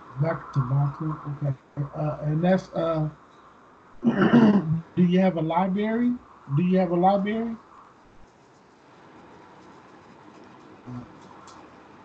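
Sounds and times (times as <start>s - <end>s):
person clearing throat: 4.0s - 4.8s.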